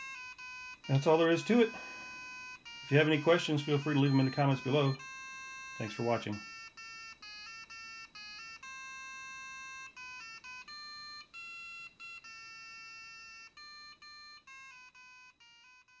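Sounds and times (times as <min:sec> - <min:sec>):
square-wave electronic melody: 0:00.0 - 0:13.0.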